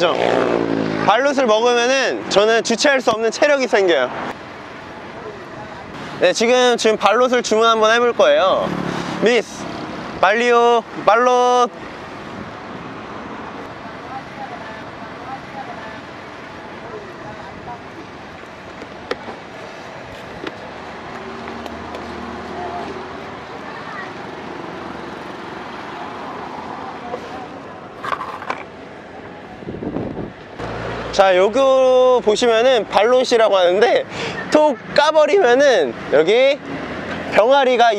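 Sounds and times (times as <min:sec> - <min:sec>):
cars and motorbikes passing: 0:00.0 - 0:37.9
faint voices: 0:22.4 - 0:24.6.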